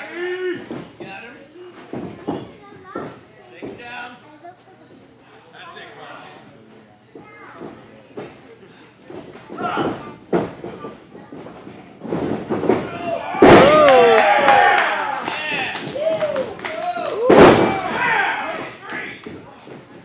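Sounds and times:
body slamming on ring mat: 12.1s - 14.1s, 17.2s - 18.3s
spectators shouting: 12.9s - 18.7s.

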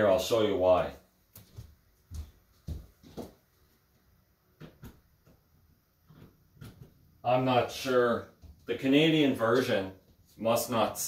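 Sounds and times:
footsteps on hard floor: 1.3s - 5.0s.

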